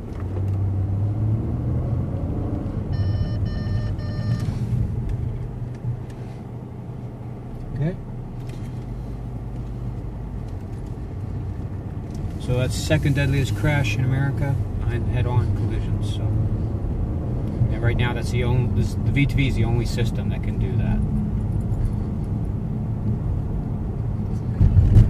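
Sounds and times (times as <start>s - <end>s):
car engine and road noise: 0.0s - 25.0s
electronic warning beeps: 2.9s - 4.6s.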